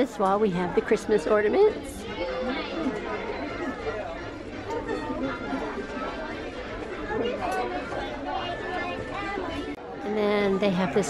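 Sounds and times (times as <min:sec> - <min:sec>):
chatter of people talking: 0:00.0 - 0:11.0.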